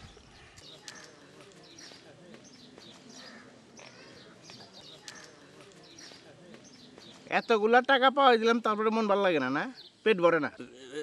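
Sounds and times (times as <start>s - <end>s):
small birds chirping: 0.0s - 8.0s, 9.0s - 11.0s.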